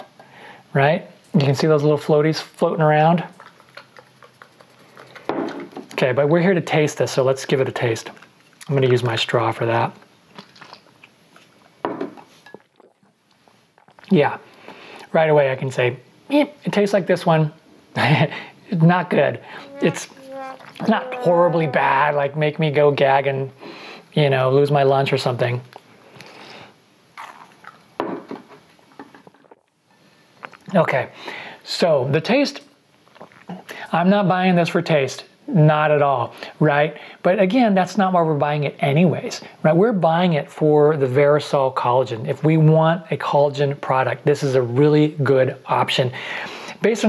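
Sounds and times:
short vocal sound: 19.3s - 22.5s.

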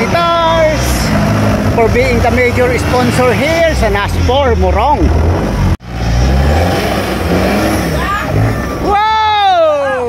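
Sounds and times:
buggy engine running hard: 0.0s - 10.0s.

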